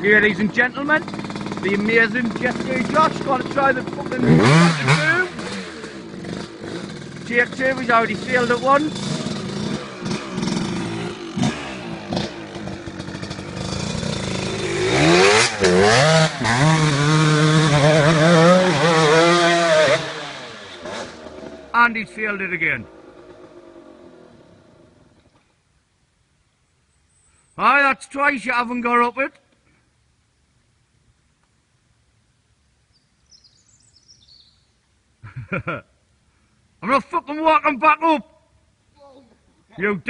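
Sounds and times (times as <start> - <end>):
dirt bike engine revving: 0.0 - 25.4.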